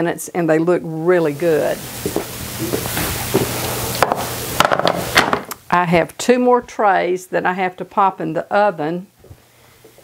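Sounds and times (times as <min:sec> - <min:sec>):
steady hiss: 0:00.6 - 0:10.0.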